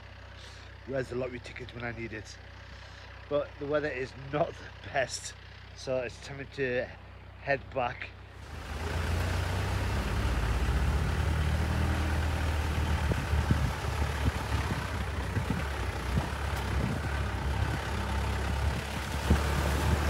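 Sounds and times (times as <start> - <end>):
engine and road drone: 0.0 - 20.0.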